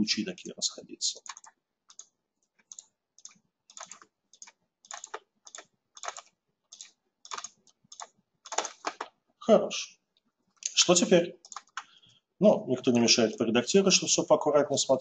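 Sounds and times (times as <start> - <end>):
computer mouse clicking: 1.1 - 9.2, 11.4 - 12.0.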